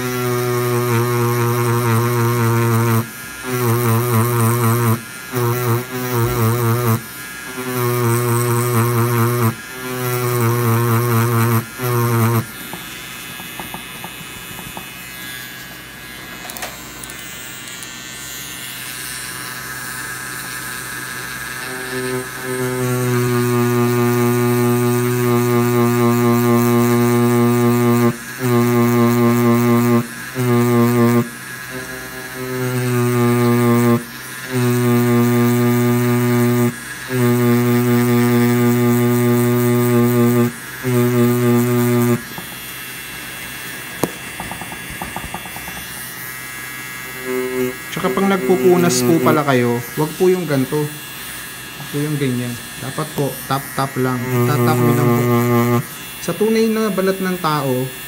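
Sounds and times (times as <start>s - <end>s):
tattoo machine buzzing: 0.0s - 58.0s.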